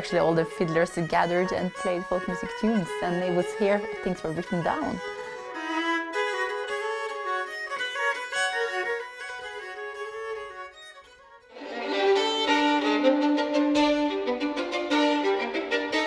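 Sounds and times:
solo violin melody: 0:00.0 - 0:16.0.

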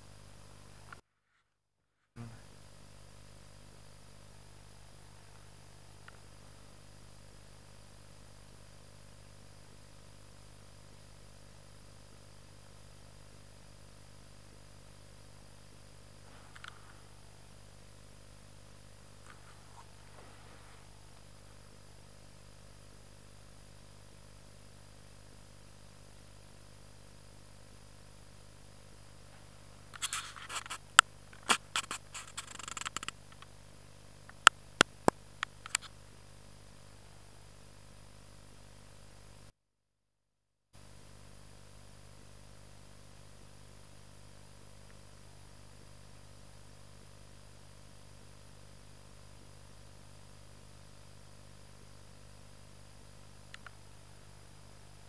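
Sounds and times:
rustling and scraping near microphone: 0:30.0 - 0:30.8, 0:31.4 - 0:33.1.

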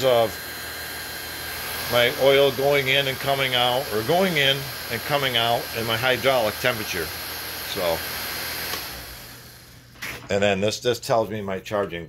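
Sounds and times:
electric cooling fans whirring: 0:00.0 - 0:12.0.

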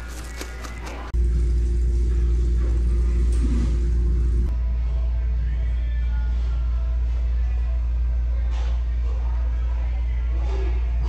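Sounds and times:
low rumble: 0:01.2 - 0:08.5.

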